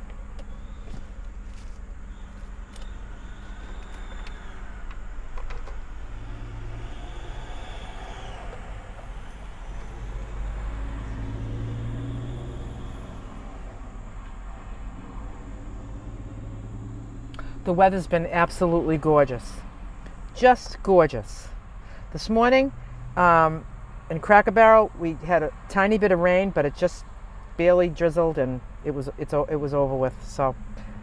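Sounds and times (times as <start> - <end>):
engine and traffic rumble: 0.0 - 31.0.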